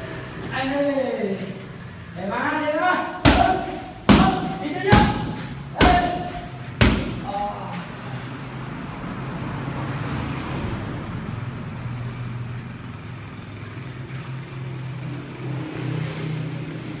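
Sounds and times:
rushing background noise: 0.0s - 17.0s.

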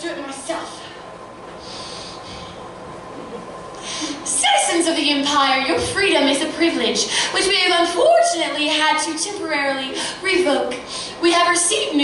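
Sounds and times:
person breathing: 1.6s - 2.7s, 3.8s - 4.2s.

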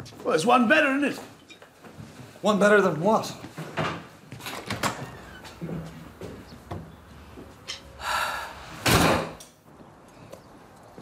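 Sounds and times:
door slamming shut: 8.8s - 9.4s.

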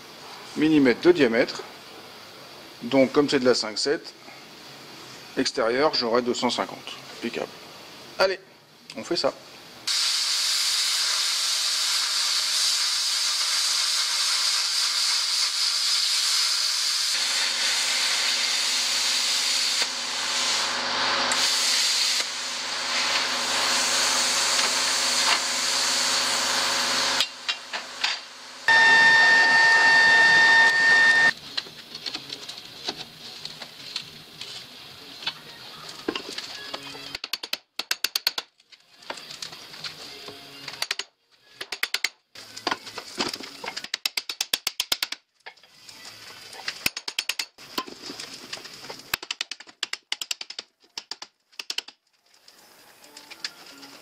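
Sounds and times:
plasma cutter hissing: 9.9s - 27.3s
steady whistling tone: 28.7s - 31.3s.

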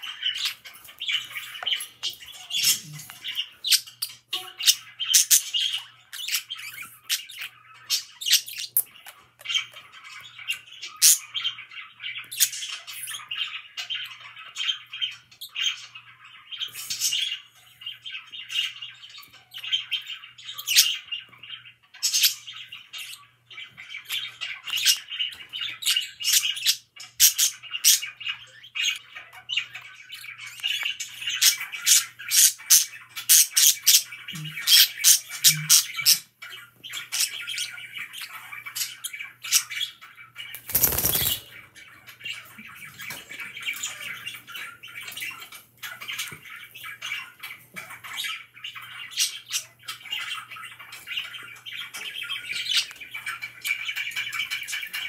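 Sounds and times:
budgerigars warbling and chattering: 0.0s - 55.0s.

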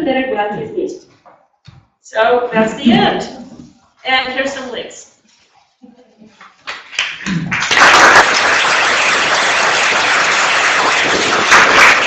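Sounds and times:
audience applauding: 6.7s - 12.0s.

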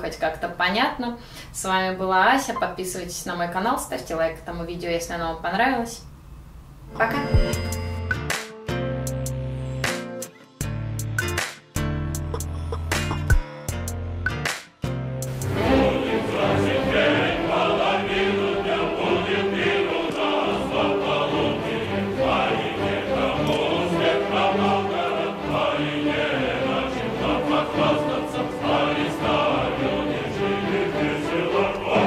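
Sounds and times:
choir singing with instruments: 15.4s - 32.0s.

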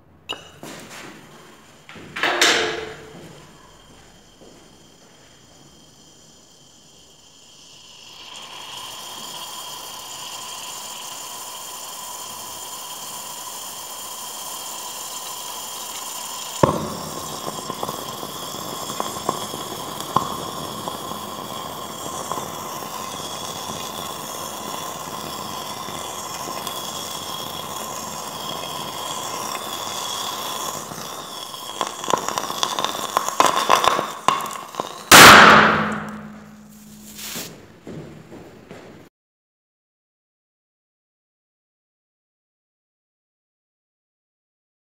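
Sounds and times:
fizzing hiss: 0.4s - 37.6s
fire crackling: 0.6s - 37.8s
loud bang: 2.2s - 3.4s, 35.1s - 37.2s
scattered pops: 16.4s - 36.6s
sharp crack: 33.2s - 37.1s.

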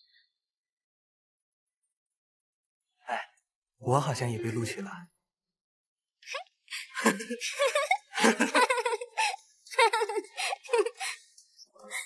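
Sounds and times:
person laughing: 7.0s - 11.2s.

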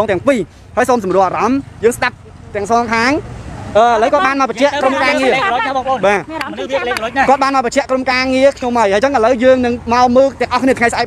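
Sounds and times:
low traffic rumble: 0.0s - 11.0s
people talking: 0.0s - 11.0s.

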